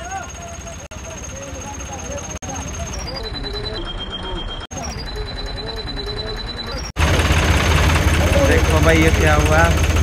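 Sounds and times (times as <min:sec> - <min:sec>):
people talking: 0:00.0 - 0:06.9, 0:08.2 - 0:09.8
tractor engine rumbling: 0:00.0 - 0:10.0.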